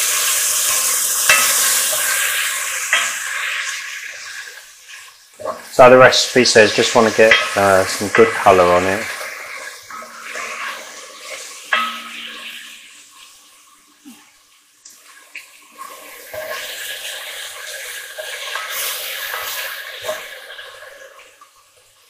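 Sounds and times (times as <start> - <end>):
beef sizzling in oil: 0.0 - 22.0
spoon knocking against pot: 11.7 - 12.4.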